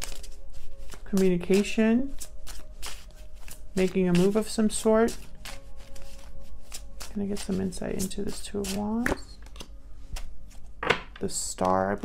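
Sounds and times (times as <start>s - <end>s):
cards being shuffled: 0.0s - 10.7s.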